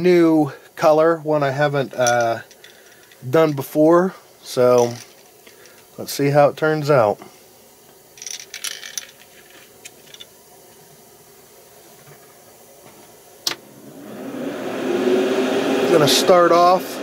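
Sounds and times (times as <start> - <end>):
handling rustles and clicks: 4.8 - 5.9, 8.2 - 10.4
small motor humming: 13.6 - 17.0.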